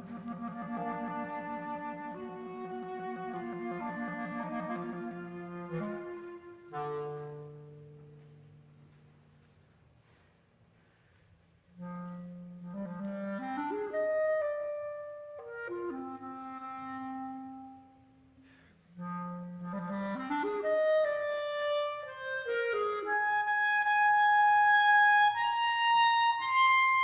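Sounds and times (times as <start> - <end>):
solo clarinet playing: 0.0 - 8.9, 11.7 - 27.0.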